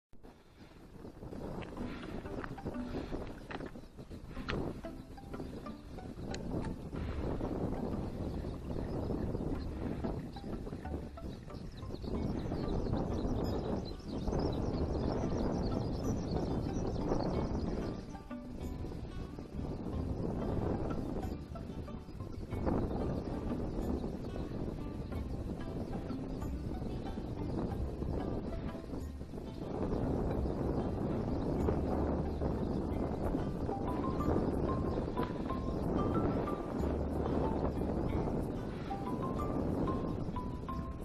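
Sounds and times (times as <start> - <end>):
wind buffeting microphone: 0.1 - 41.0.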